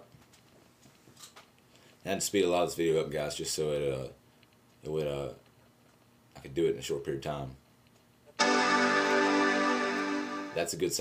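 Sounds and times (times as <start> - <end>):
computer startup chime: 8.4 - 10.7.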